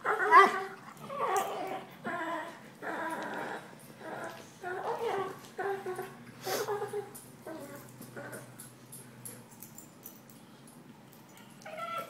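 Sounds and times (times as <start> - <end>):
puppies growling and whining: 0.0 - 8.8, 11.6 - 12.0.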